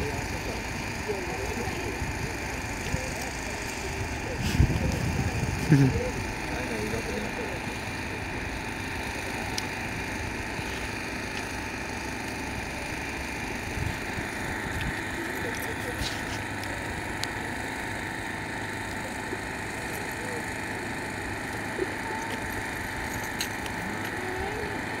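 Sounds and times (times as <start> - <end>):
distant cars driving slowly: 0.0 - 25.0
faint indistinct voices: 0.0 - 25.0.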